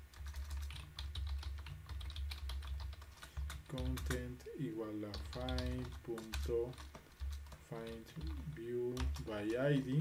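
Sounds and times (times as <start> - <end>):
keyboard typing clicks: 0.1 - 4.4, 5.0 - 10.0.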